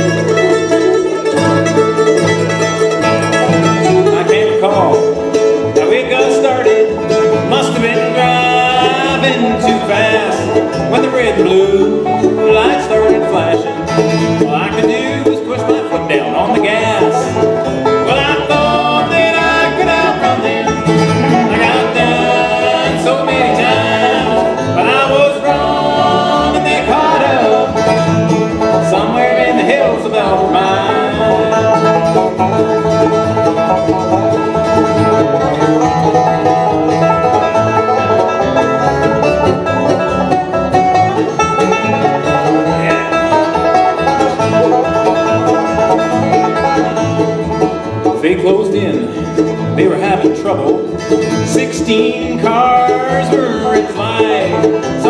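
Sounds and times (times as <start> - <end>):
bluegrass band playing: 0.0 - 55.0.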